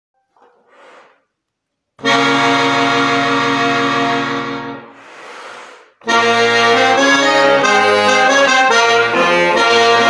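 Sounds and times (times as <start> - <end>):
button accordion sustained chord: 2.0 - 5.2, 6.0 - 10.0.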